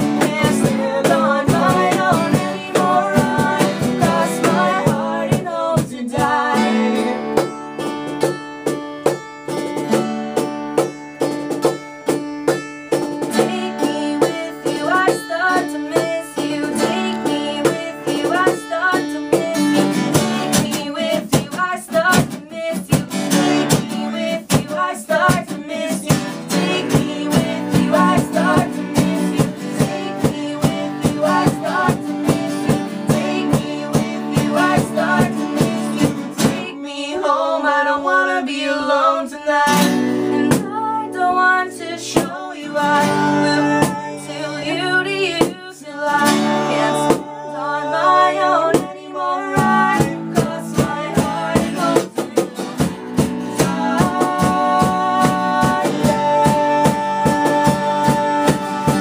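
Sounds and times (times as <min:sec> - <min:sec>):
woman singing: 0:00.0 - 0:07.5, 0:13.2 - 0:59.0
acoustic guitars strumming: 0:00.0 - 0:59.0.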